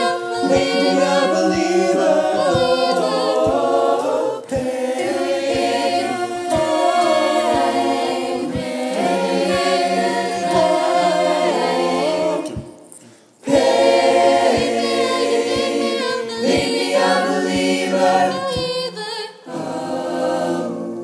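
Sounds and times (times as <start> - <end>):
soft low beat: 0.0 - 12.9, 13.5 - 18.8
choir singing a cappella: 0.0 - 21.0.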